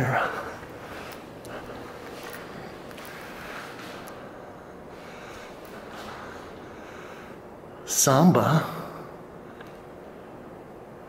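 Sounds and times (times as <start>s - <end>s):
faint footsteps: 0.2s - 6.7s.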